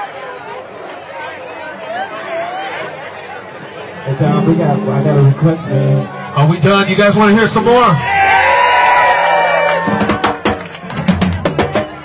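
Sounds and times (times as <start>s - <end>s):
long drawn-out shout: 8.0s - 10.3s.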